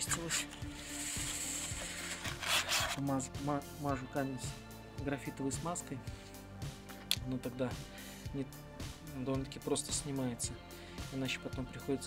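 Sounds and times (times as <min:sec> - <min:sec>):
abrasive sheet rubbing on metal: 0:00.0 - 0:03.0.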